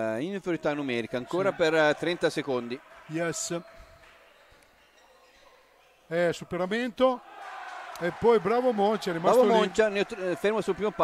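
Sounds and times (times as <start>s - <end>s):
faint sports hall ambience: 0.0s - 11.0s.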